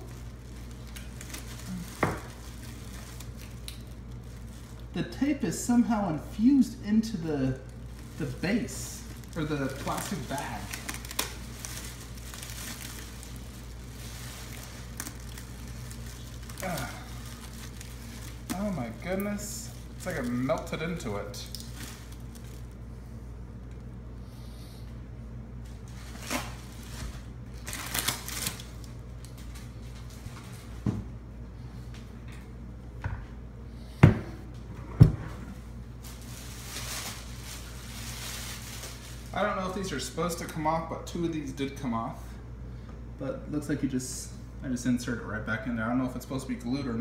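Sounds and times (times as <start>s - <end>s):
plastic bag crinkling and rustling: 0.0s - 23.0s, 25.6s - 30.8s, 35.6s - 40.7s
statue base knocking on countertop: 2.0s - 2.3s, 34.0s - 34.4s.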